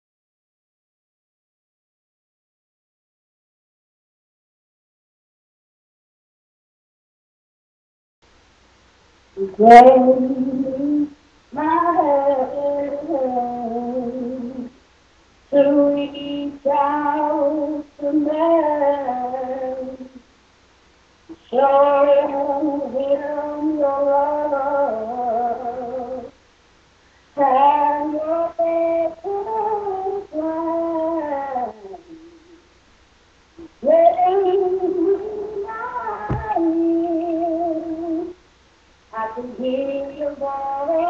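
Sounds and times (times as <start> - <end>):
woman singing unaccompanied: 9.4 - 14.8, 15.5 - 20.3, 21.3 - 26.4, 27.4 - 32.6, 33.6 - 38.4, 39.1 - 41.0
breaths: 27.0 - 27.4.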